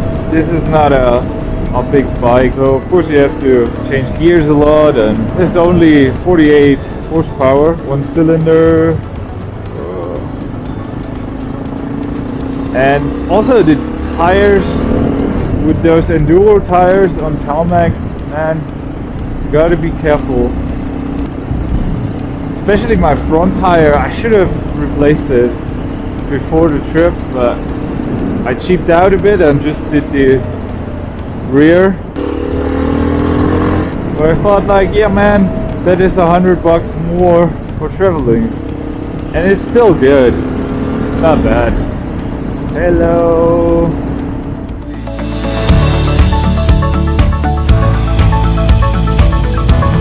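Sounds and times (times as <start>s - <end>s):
motorcycle engine cruising: 0.0s - 50.0s
road and wind noise: 0.0s - 50.0s.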